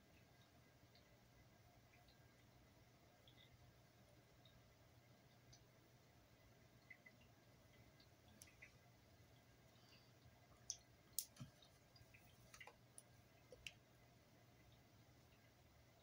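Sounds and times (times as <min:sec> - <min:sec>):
small clicks and taps: 0:10.6 - 0:13.8.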